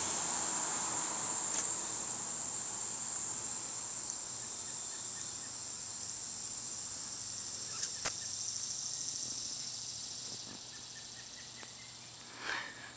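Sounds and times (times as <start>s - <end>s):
high-pitched insect chorus: 0.0s - 12.9s.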